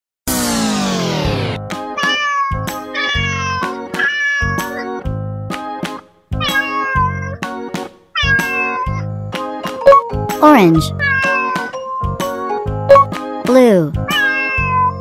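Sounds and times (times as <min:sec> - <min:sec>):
cat meowing: 0:02.0 - 0:05.0, 0:06.4 - 0:07.4, 0:08.2 - 0:09.1, 0:10.9 - 0:11.7, 0:14.1 - 0:15.0
boogie-woogie music with steady beat: 0:02.6 - 0:10.4.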